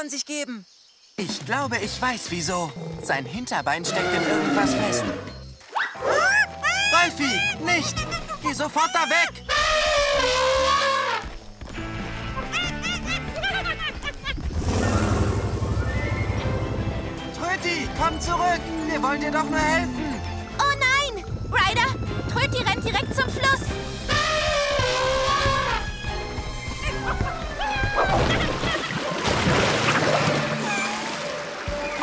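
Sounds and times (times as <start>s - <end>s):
background music: 1.4s - 28.7s, 29.4s - 32.0s
cartoon elephant trumpeting: 3.8s - 5.2s, 8.8s - 11.3s, 23.2s - 25.9s.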